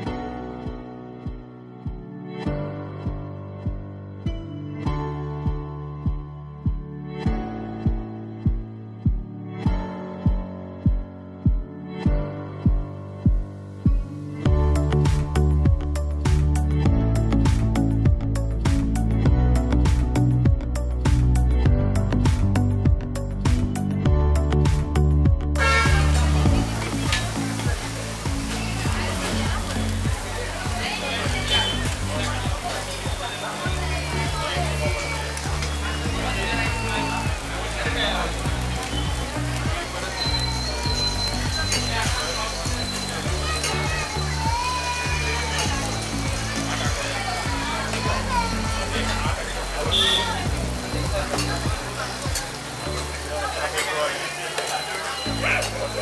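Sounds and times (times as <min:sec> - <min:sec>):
background music with bass line: 0:00.0 - 0:53.8
food sizzling on griddle: 0:25.6 - 0:56.0
voices: 0:25.6 - 0:56.0.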